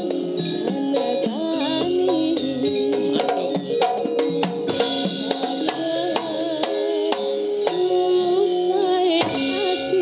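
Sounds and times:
ringing metallophone tones: 0:00.0 - 0:10.0
sharp hand drum strokes: 0:09.1 - 0:10.0.

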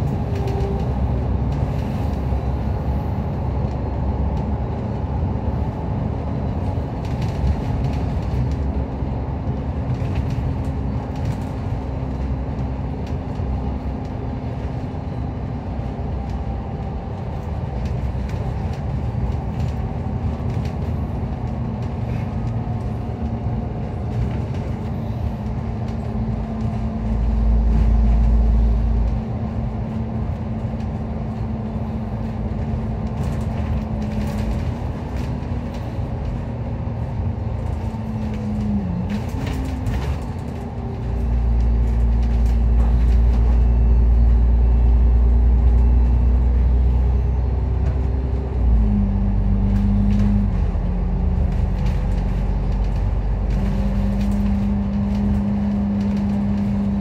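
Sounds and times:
bus engine hum: 0:00.0 - 0:57.0
deep rumble: 0:00.0 - 0:57.0
road rumble: 0:00.0 - 0:57.0.

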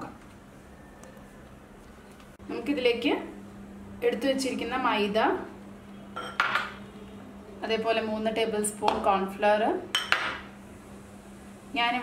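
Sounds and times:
bowls clinking: 0:06.2 - 0:06.9.

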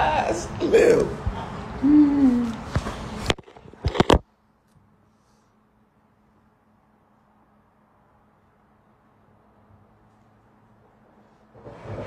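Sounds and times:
man humming: 0:01.8 - 0:02.6.

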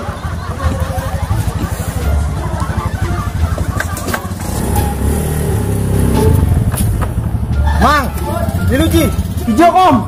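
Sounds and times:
motor scooter engine running: 0:00.0 - 0:10.0.

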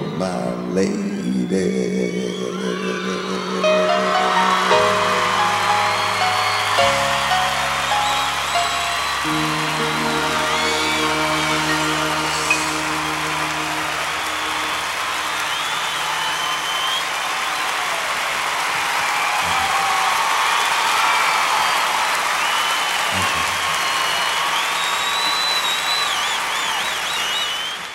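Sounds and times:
shrill whistles: 0:02.3 - 0:27.9
audience applauding and cheering: 0:02.5 - 0:27.9
band's held chord: 0:03.9 - 0:16.6.

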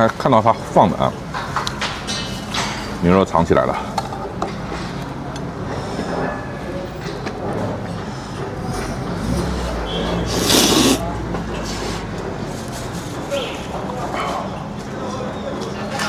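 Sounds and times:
restaurant background hum: 0:00.0 - 0:16.0
person slurping noodles: 0:10.2 - 0:11.0.

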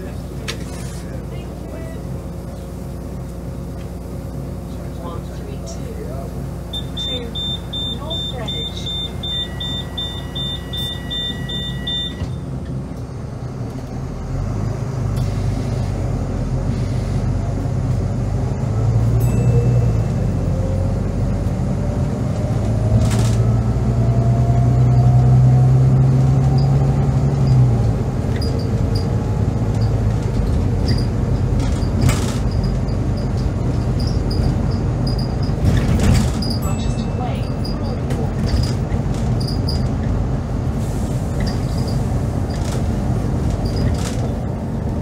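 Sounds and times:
bus diesel engine accelerating: 0:00.0 - 0:45.0.

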